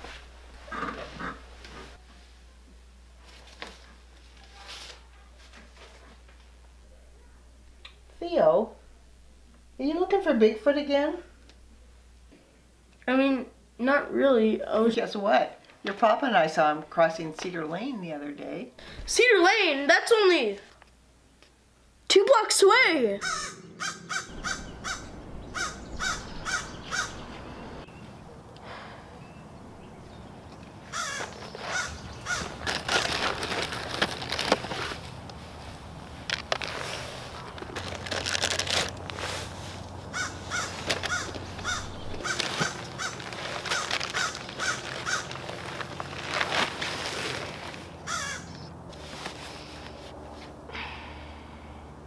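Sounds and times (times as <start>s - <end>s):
crow cawing: 23.2s - 27.6s, 30.9s - 32.6s, 40.1s - 45.4s, 48.0s - 48.6s
bird calling: 23.2s - 33.0s, 40.0s - 46.2s, 48.0s - 48.8s.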